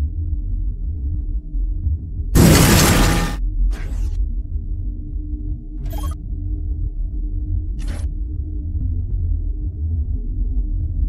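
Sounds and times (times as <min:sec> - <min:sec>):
loud burst of noise: 0:02.4 - 0:03.4.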